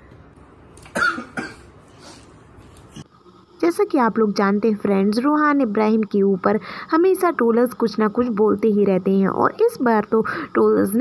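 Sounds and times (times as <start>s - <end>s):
person coughing: 0.9s - 1.7s.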